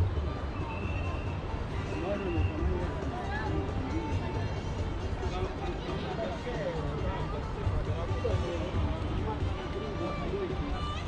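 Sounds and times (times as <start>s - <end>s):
people talking indistinctly: 0.8s - 11.0s.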